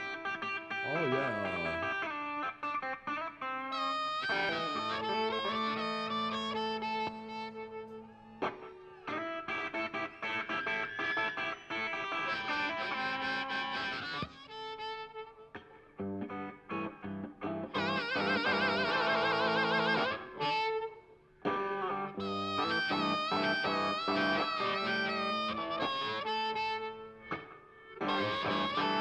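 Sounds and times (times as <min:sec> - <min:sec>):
electric guitar: 0:00.0 - 0:29.0
harmonica wavering notes: 0:00.0 - 0:29.0.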